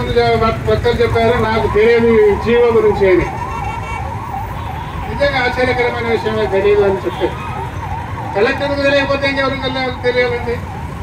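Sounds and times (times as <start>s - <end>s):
siren warbling: 0.8s - 11.0s.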